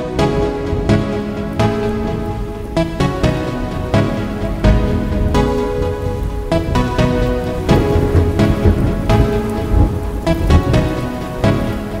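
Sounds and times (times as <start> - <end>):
music notes striking: 0.0 - 12.0
steady rushing rain: 0.0 - 12.0.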